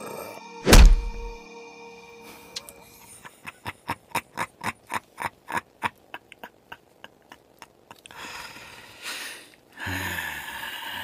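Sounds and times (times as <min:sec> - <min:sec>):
soft sustained intro music: 0:00.0 - 0:03.3
heavy thud with low rumble: 0:00.6 - 0:01.4.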